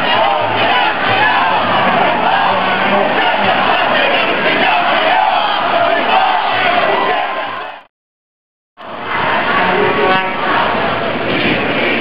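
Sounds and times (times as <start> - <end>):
crowd of protesters shouting: 0.0 - 7.9, 8.8 - 12.0.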